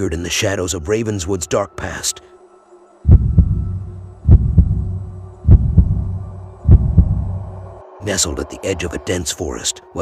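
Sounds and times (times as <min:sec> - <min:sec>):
heartbeat thumps: 0:03.1 - 0:07.4.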